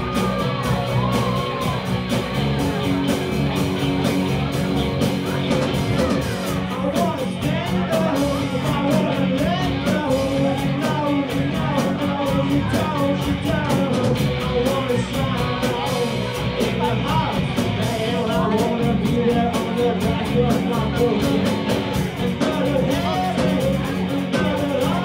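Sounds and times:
live rock band playing: 0:00.0 - 0:25.0.

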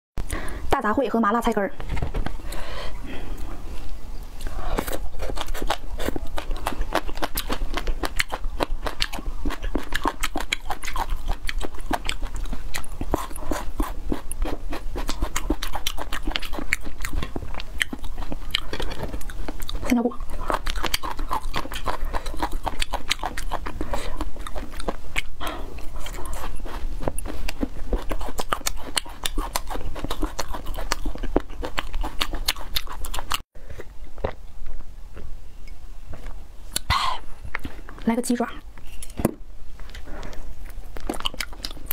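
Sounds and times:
chewing food: 0:04.4 - 0:35.3, 0:39.8 - 0:41.9.

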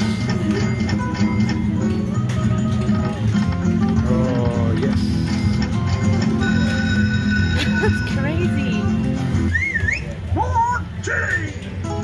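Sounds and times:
slot machine game music: 0:00.0 - 0:09.5.

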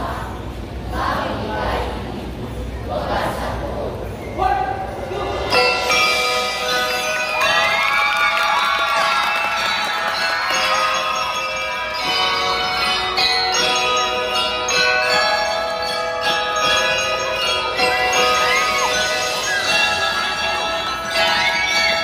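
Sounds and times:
glockenspiel ensemble melody: 0:05.3 - 0:22.0.

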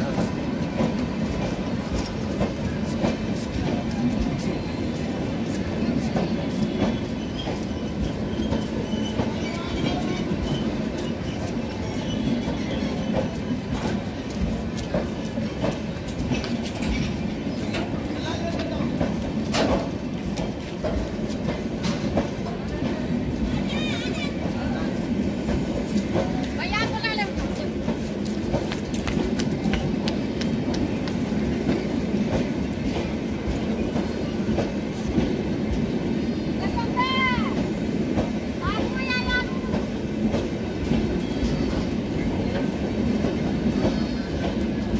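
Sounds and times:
train wheels rumbling on rails: 0:00.0 - 0:44.9
loud train clank: 0:06.0 - 0:35.9.

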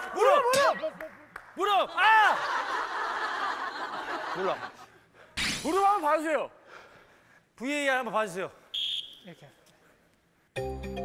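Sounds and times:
people exclaiming: 0:01.6 - 0:02.7.

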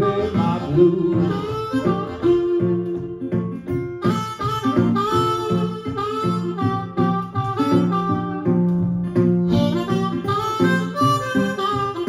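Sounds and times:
blues harmonica soloing: 0:00.0 - 0:12.0
strummed resonator guitar: 0:00.0 - 0:12.0.

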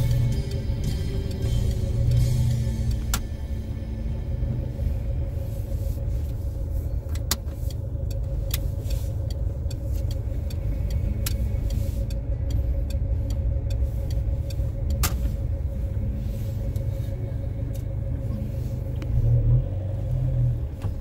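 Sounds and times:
car engine rumbling: 0:00.0 - 0:21.0.

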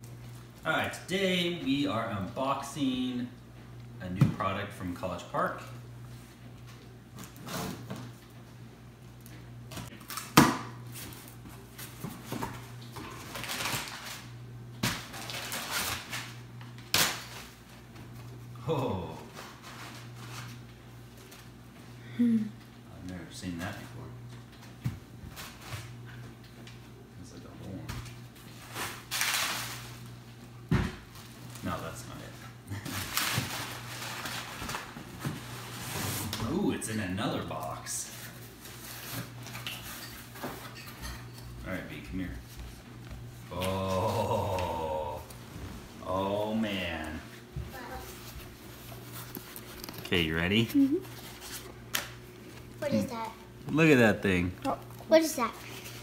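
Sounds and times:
steady low hum: 0:00.0 - 0:56.0
packing paper rustling: 0:13.1 - 0:14.3, 0:15.0 - 0:16.4, 0:32.8 - 0:36.4
cardboard rustling and scraping: 0:32.9 - 0:36.6, 0:47.7 - 0:51.8.

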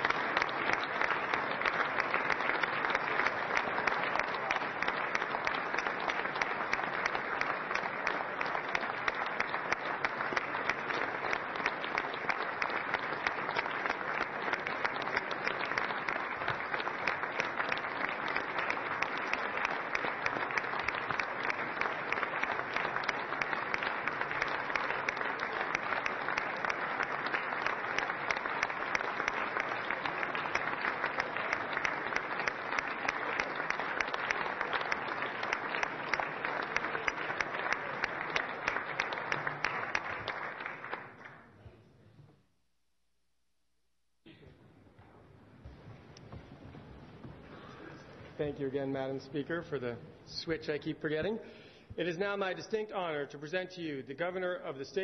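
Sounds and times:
audience applauding: 0:00.0 - 0:41.6.

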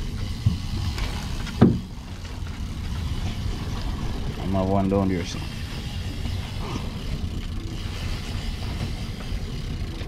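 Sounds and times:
boat engine rumbling: 0:00.0 - 0:10.0.

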